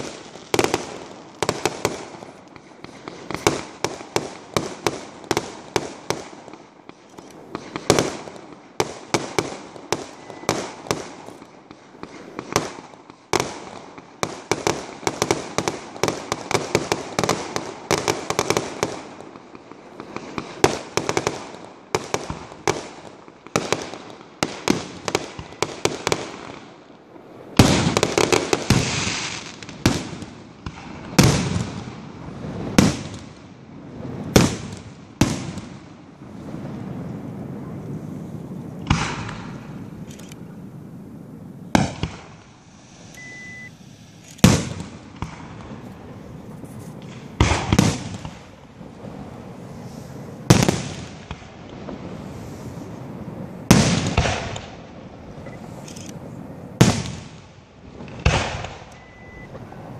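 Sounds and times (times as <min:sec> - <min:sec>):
firework shells bursting: 0:00.0 - 0:26.6, 0:32.5 - 0:59.9.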